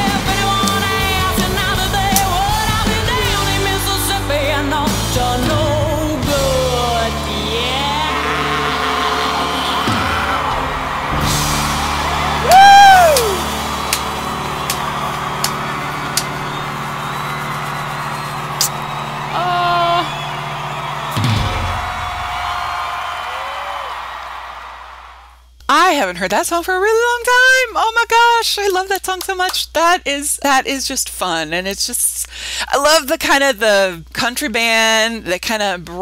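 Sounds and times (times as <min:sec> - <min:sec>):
country-rock band held chord: 0:00.0 - 0:23.2
crowd cheering: 0:06.4 - 0:25.4
person whooping: 0:12.0 - 0:14.0, 0:16.2 - 0:24.2.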